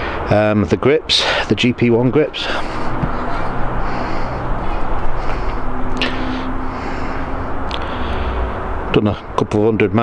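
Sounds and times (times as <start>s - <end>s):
low hum: 1.8s - 9.3s.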